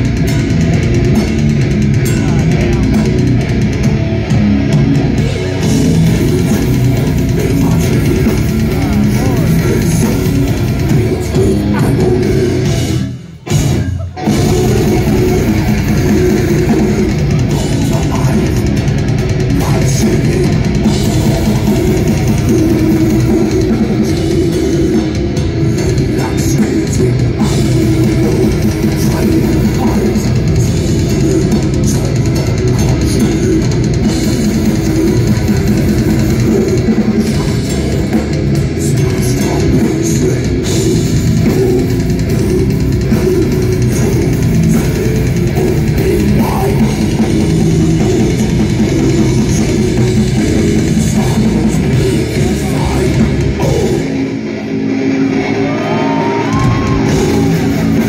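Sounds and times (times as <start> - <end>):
distorted electric guitars: 0.0 - 58.0
drum kit: 0.0 - 58.0.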